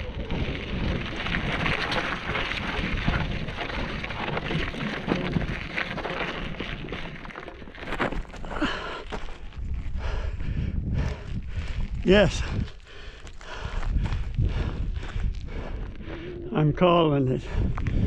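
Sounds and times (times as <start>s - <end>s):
bike tyres crunching on gravel: 0.0s - 10.4s, 11.0s - 18.0s.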